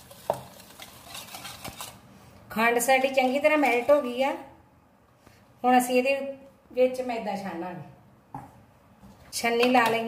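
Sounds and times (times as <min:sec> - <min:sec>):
whisk scraping plastic bowl: 0:00.0 - 0:02.0.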